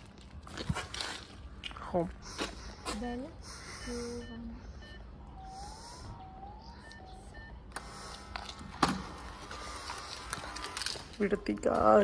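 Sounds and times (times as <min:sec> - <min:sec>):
intercom ringing tone: 0:03.0 - 0:08.5
keypad beeps: 0:03.0 - 0:08.5
door-release buzzer: 0:07.7 - 0:11.0.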